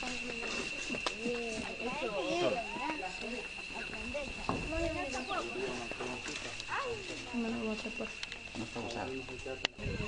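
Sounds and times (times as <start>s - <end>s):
people talking over one another: 0.0s - 10.0s
steady high-pitched whine: 0.0s - 10.0s.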